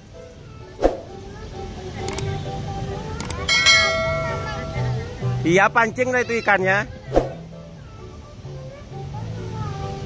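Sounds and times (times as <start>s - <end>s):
faint background music: 0.0s - 10.0s
short clicks: 2.0s - 2.4s, 3.2s - 3.5s
bright bell-like chime: 3.5s - 5.1s.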